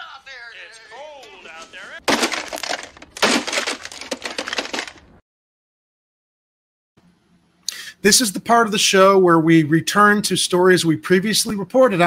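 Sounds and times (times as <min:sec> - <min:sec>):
plastic clock radio being smashed: 0:02.0 - 0:05.2.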